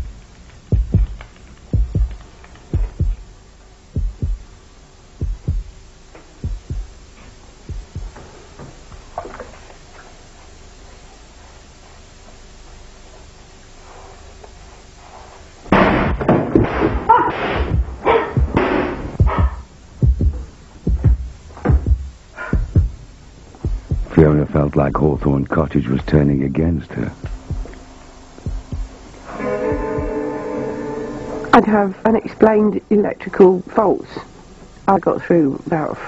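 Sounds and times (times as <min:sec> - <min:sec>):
heartbeat thumps: 0:00.0 - 0:09.3, 0:16.0 - 0:26.3, 0:27.1 - 0:30.2
faint steady hum: 0:00.0 - 0:36.0.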